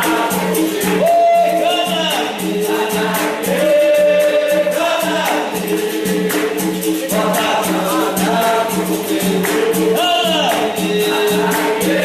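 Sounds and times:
group singing in chorus: 0.0s - 12.0s
pandeiro: 0.0s - 12.0s.

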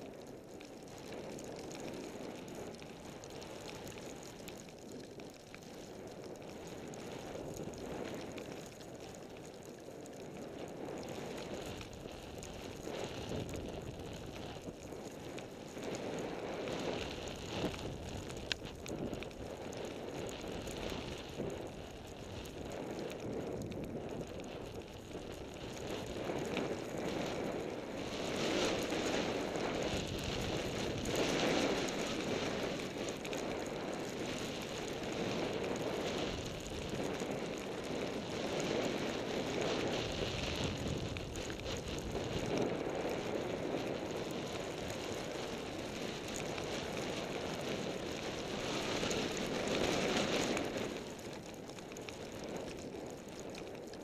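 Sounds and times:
skis sliding over snow: 0.0s - 54.0s
wind rushing across microphone: 0.0s - 54.0s.

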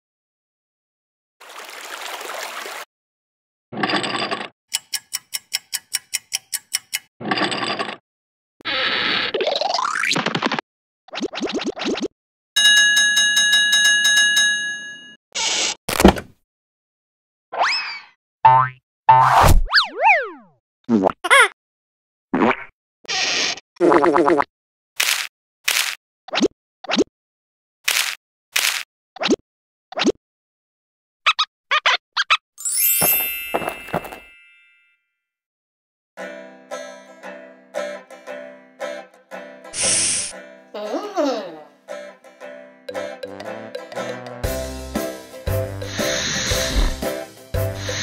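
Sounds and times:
scratchy ticks: 4.7s - 7.1s
sharp click: 4.7s - 7.1s
chiming bell trill: 12.6s - 15.2s, 32.6s - 35.0s
squeaky cartoon giggles: 21.3s - 21.6s
hiss-like burst: 39.8s - 40.3s, 45.9s - 46.8s.

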